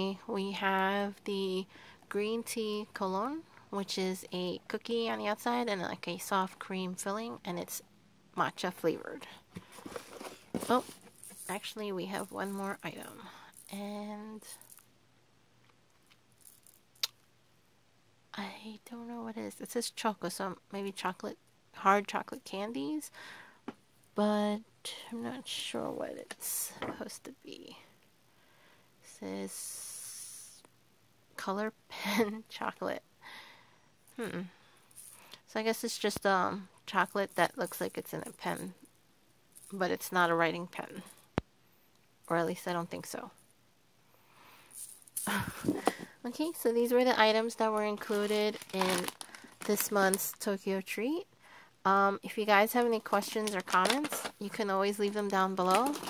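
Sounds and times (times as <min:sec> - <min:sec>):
light plastic rustling: 0:09.5 - 0:13.8, 0:47.3 - 0:50.5, 0:52.6 - 0:56.0.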